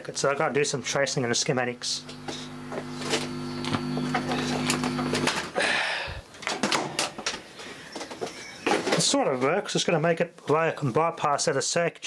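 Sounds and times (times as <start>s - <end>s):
electrical buzz from speaker: 0.0s - 6.3s
clicks and rustling of wires: 2.1s - 5.5s, 6.3s - 9.6s.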